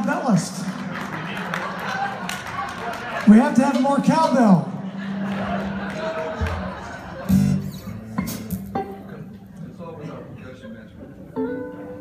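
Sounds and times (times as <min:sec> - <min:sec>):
live band playing quietly: 0:03.3 - 0:09.7, 0:11.0 - 0:12.0.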